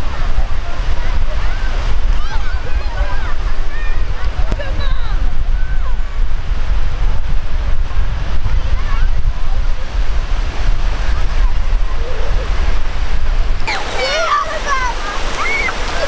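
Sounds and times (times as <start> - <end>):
children's voices: 0.0 - 6.2, 8.2 - 10.1, 10.7 - 16.0
small waves breaking on shore: 0.0 - 16.0
wind buffeting microphone: 0.0 - 16.0.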